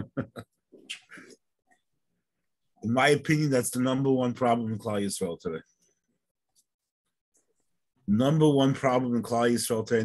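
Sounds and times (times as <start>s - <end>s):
man laughing: 0.0s - 0.8s.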